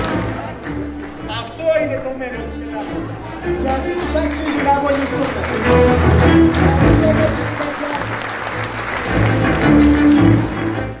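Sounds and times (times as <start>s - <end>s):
music with sustained notes: 0.0s - 11.0s.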